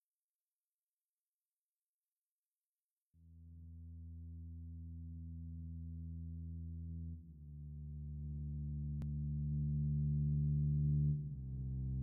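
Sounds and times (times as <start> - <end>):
low musical drone: 3.4 - 12.0.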